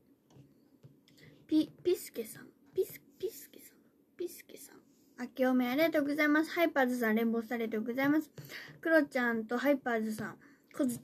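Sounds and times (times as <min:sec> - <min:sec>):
young woman whispering: 0:01.2 - 0:04.9.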